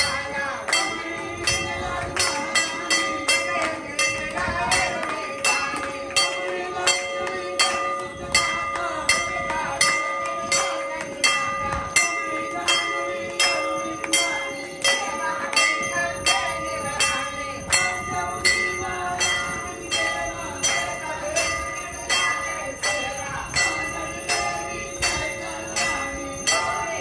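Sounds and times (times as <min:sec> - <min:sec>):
temple bells ringing: 0:00.0 - 0:27.0.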